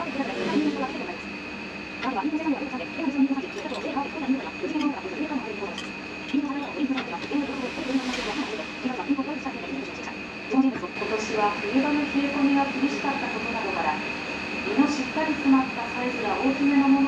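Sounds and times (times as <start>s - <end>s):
television news voice: 0.0s - 1.3s, 2.0s - 14.0s
steady high-pitched whine: 0.0s - 17.0s.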